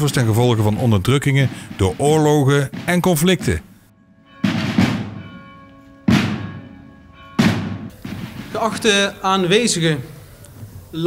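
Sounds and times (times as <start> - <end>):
marching drums slow beat: 0.0 - 6.8, 7.4 - 9.0.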